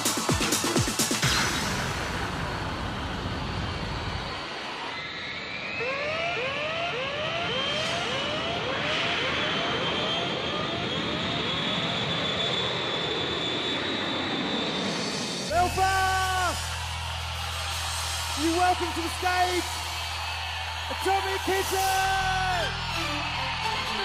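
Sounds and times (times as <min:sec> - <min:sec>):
electronic music: 0:00.0 - 0:04.3, 0:15.5 - 0:24.0
concert crowd screaming: 0:00.0 - 0:24.0
rising siren-like whoops: 0:02.4 - 0:24.0.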